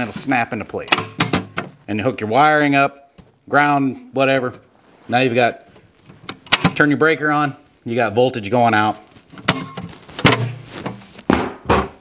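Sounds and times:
handling noise on metal panel: 9.4 - 12.0.

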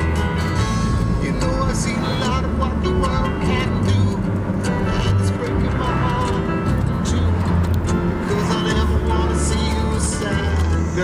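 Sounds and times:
car driving rumble: 0.0 - 11.0
music with singing voice: 0.0 - 11.0.

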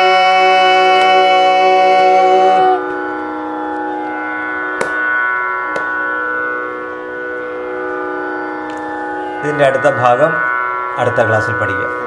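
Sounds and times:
sharp string pluck: 0.0 - 12.0
tanpura drone: 0.0 - 12.0.

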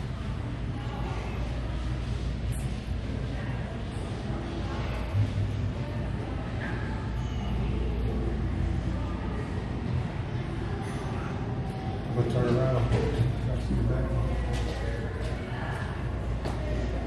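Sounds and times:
low room rumble: 0.0 - 17.0.

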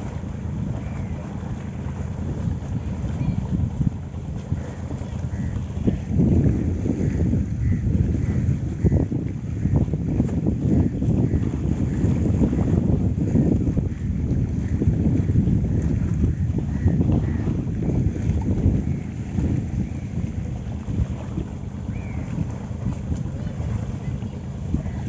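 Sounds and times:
wind buffeting microphone: 0.0 - 25.0.

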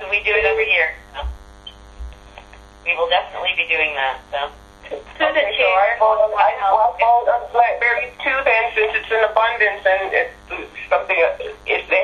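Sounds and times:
electrical hum on phone line: 0.0 - 12.0
soft low thumps: 0.3 - 2.8.

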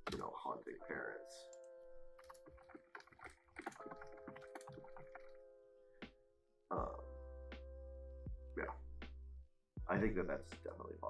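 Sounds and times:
typing on computer keyboard: 0.0 - 0.4, 2.2 - 5.4
soft background music: 0.0 - 11.0.

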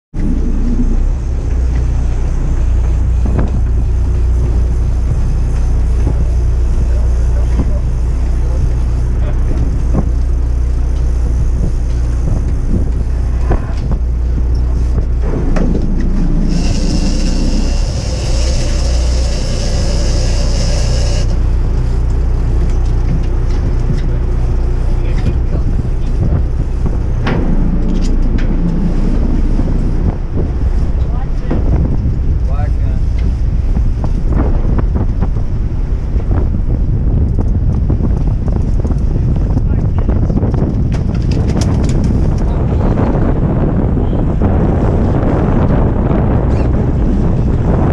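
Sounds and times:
wind buffeting microphone: 0.1 - 47.9
boat engines droning: 0.2 - 47.9
high-pitched buzz: 15.6 - 22.0.

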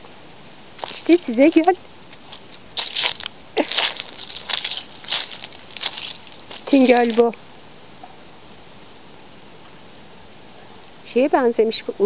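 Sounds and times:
footsteps on leaves and gravel: 0.8 - 7.4.

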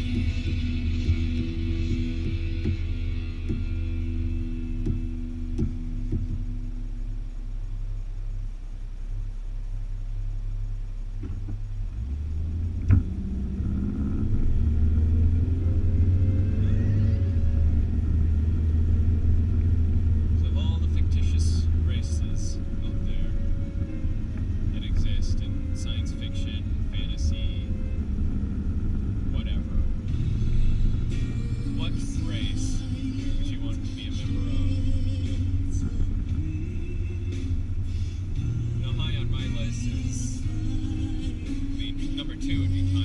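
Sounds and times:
car engine and road rumble: 0.0 - 43.0.

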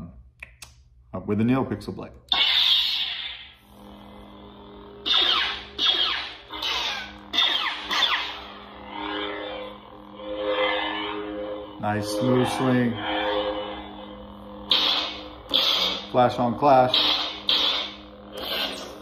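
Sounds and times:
lightsaber hum: 1.2 - 19.0
lightsaber ignition: 2.3 - 19.0
lightsaber swing swooshes: 5.1 - 14.1, 14.7 - 16.1.

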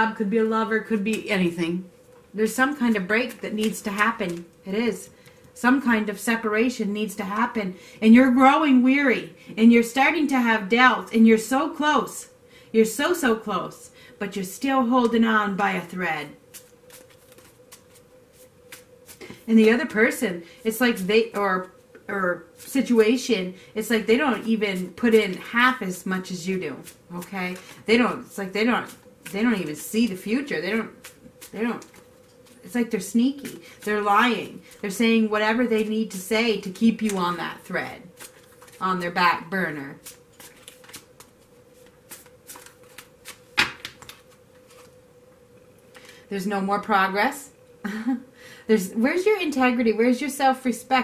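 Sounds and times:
faint steady hum: 0.0 - 51.0
cards shuffled by hand: 2.8 - 4.5, 16.5 - 19.8, 26.8 - 27.8, 28.8 - 35.0, 38.1 - 39.1, 39.9 - 45.0.

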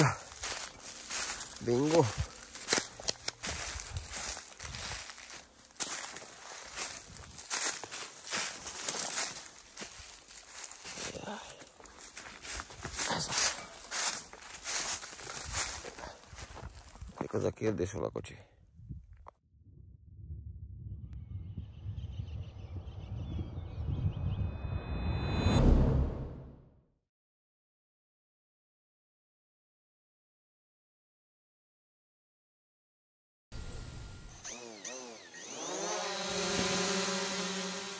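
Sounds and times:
sweeping tone gliding into buzzing hum: 0.3 - 10.1, 20.7 - 25.6, 33.6 - 37.9.

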